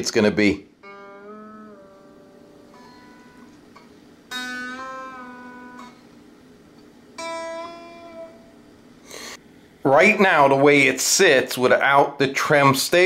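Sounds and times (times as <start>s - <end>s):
electric guitar chords bent with whammy bar: 0.8s - 8.9s.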